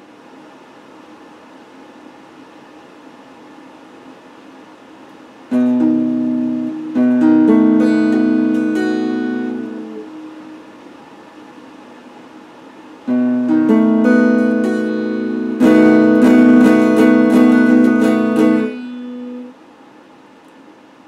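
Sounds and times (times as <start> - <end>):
electric guitar strumming: 5.5 - 10.7, 13.1 - 19.6.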